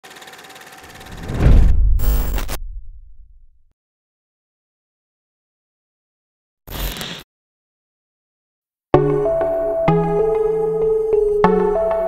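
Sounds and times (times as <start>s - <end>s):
deep bass rumble: 1.1s - 3.7s.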